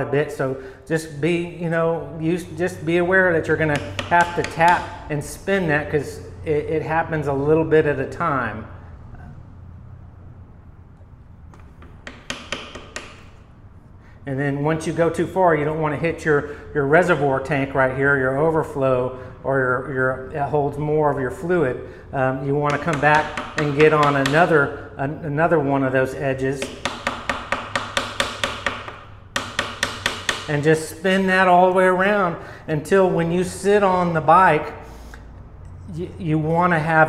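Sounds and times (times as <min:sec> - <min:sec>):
hammer tapping wooden dowel: 0:03.5 - 0:05.0, 0:11.5 - 0:13.4, 0:22.6 - 0:24.7, 0:26.6 - 0:30.7.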